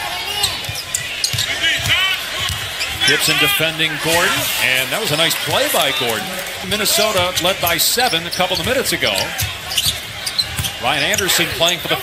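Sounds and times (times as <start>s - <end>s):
arena crowd noise: 0.0s - 12.0s
sneakers squeaking: 0.0s - 12.0s.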